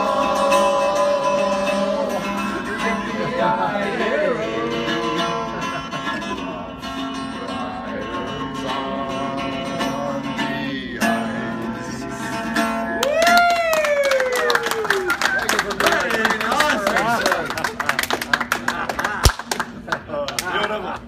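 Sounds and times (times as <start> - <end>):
person singing: 0.0 - 6.3
long held vocal call: 0.0 - 14.8
acoustic guitar: 0.0 - 15.2.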